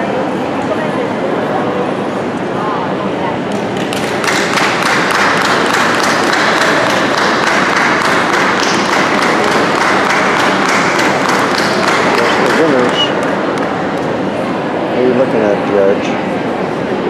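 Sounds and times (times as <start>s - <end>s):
audience applauding: 3.5s - 14.2s.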